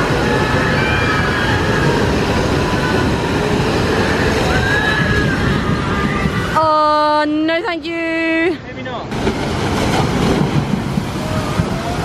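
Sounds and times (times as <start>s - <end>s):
water rushing down chutes: 0.0s - 6.8s, 8.7s - 12.0s.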